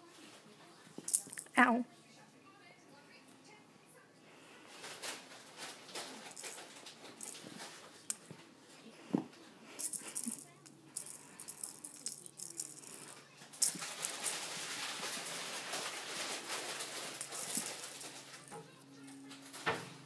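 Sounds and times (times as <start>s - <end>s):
rattle toy rattling on carpet: 1.0s - 1.6s, 4.9s - 8.3s, 9.7s - 18.6s.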